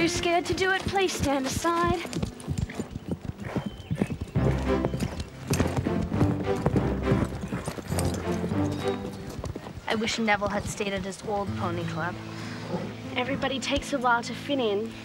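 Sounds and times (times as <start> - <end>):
horse hoofbeats on sand: 0.0 - 14.2
music with low chords: 4.3 - 9.5.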